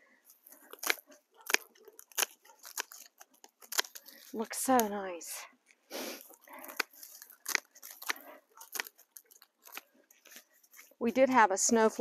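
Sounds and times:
dry plant stalks snapping: 0.4 - 11.0.

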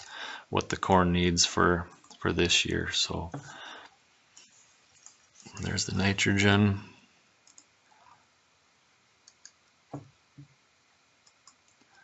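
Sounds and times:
computer mouse clicks: 4.4 - 5.7, 7.4 - 7.7, 9.2 - 10.1, 11.2 - 12.0.

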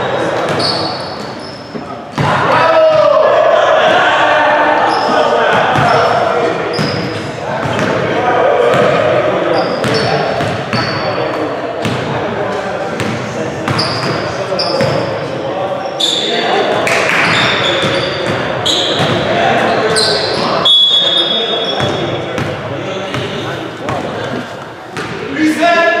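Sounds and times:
sneakers squeaking: 0.0 - 3.0, 4.8 - 8.0, 8.7 - 12.2, 12.8 - 25.4
players' voices echoing: 0.0 - 26.0.

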